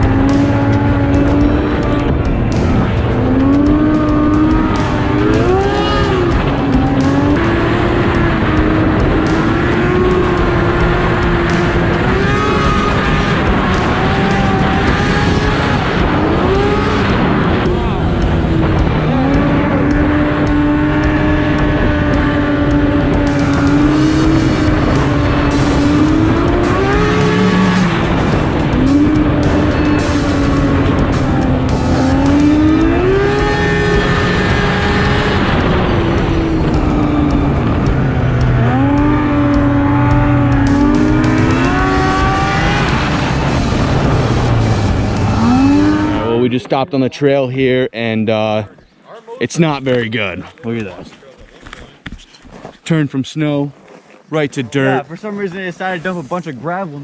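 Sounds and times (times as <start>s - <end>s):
snowmobile engine running: 0.0s - 47.2s, 54.3s - 57.0s
steady rush of noise: 0.0s - 48.8s.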